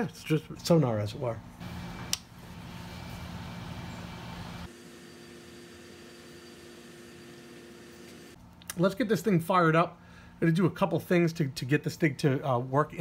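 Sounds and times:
power supply hum: 1.6 - 8.4.

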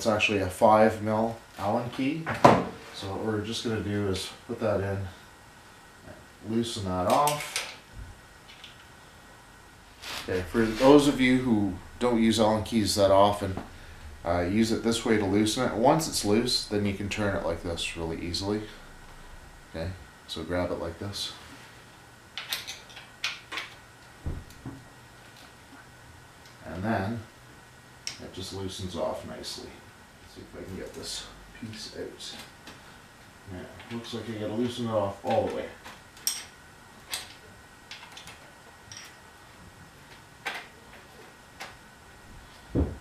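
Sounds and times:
dull knocks: 42.7 - 43.0.

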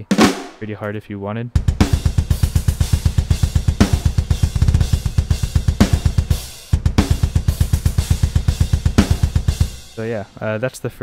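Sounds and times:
hard snare hits: 0.0 - 0.7, 1.8 - 9.8
double-kick bass drum: 1.6 - 10.0
cymbals: 1.6 - 10.4.

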